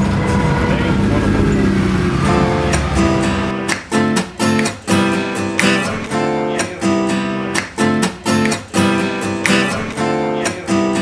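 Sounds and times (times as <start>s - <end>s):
vehicle engine humming: 0.0s - 3.7s
street traffic: 0.0s - 11.0s.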